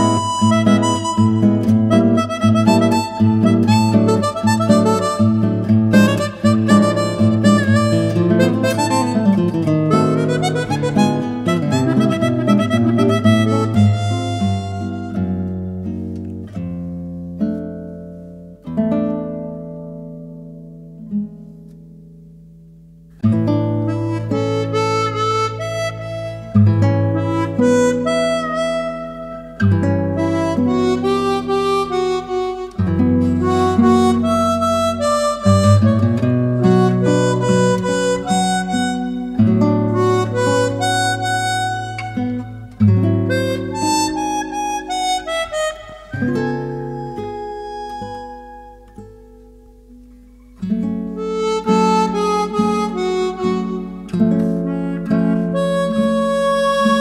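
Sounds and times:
harmonica and guitar tango: 0:00.0 - 0:16.4, 0:23.2 - 0:57.0.

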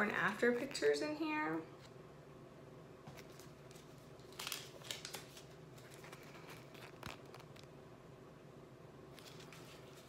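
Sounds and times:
pages flipping: 0:03.1 - 0:07.7, 0:09.1 - 0:10.0.

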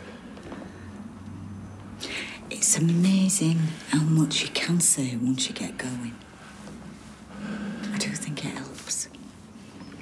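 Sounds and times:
person whispering softly: 0:07.8 - 0:09.2.

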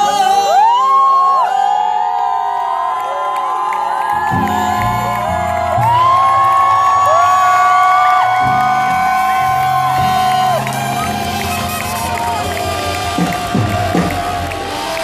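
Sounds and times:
crowd whooping and cheering: 0:00.0 - 0:15.0
band playing low chords: 0:08.4 - 0:15.0.

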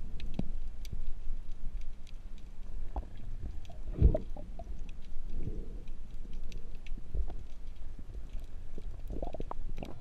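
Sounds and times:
low rumbling underwater noise: 0:00.0 - 0:10.0.

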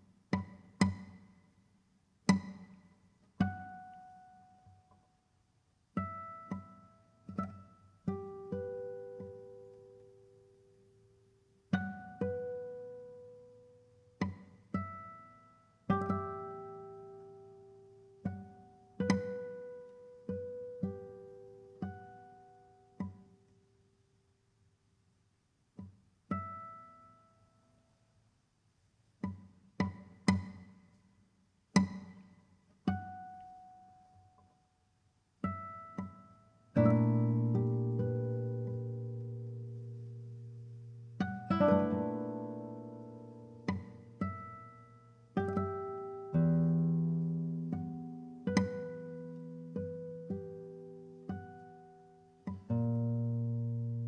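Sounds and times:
classical guitar plucked notes: 0:00.3 - 0:01.3, 0:02.2 - 0:05.1, 0:05.9 - 0:23.5, 0:25.8 - 0:27.6, 0:29.2 - 0:31.0, 0:31.7 - 0:34.6, 0:35.4 - 0:54.0.

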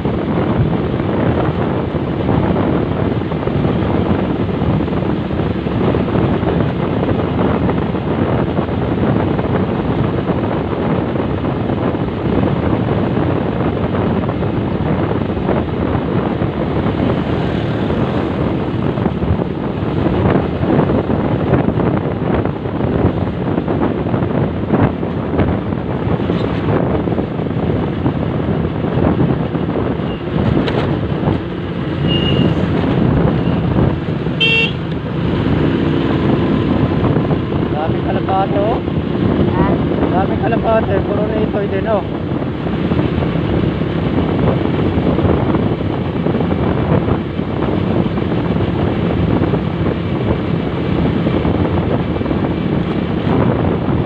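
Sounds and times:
motorcycle engine drone: 0:00.0 - 0:54.0
wind rush on microphone: 0:00.0 - 0:54.0
short high horn beep: 0:32.1 - 0:32.5, 0:34.4 - 0:34.8.

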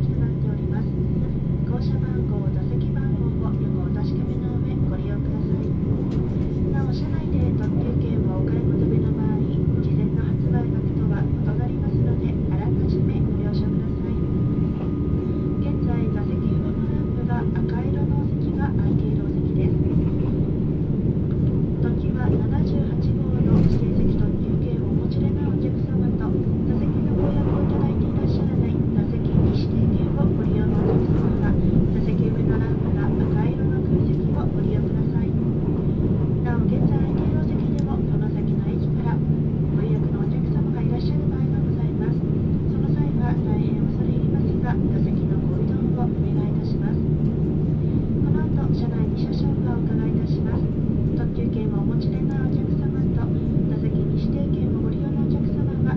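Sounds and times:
train wheels rumbling on rails: 0:00.0 - 0:53.3.

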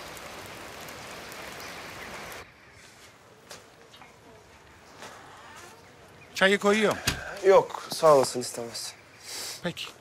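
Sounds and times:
rain-like outdoor hiss: 0:00.0 - 0:10.0.

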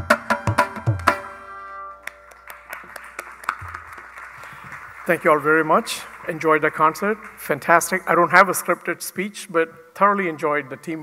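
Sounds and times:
drum ringing: 0:00.0 - 0:01.4
audience clapping: 0:02.0 - 0:08.3.

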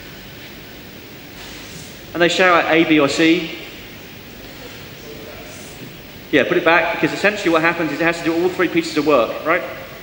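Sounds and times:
low background hiss: 0:02.1 - 0:10.0.

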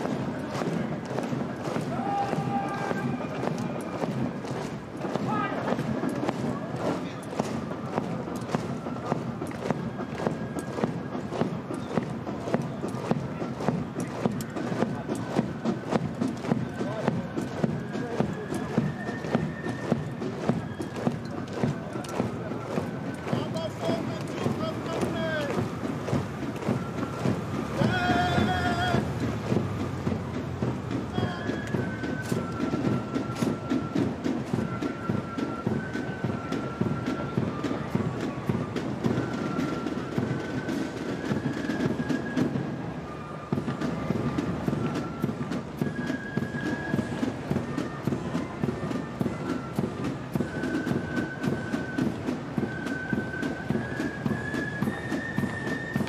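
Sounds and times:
boots marching on paved road: 0:00.0 - 0:56.0.

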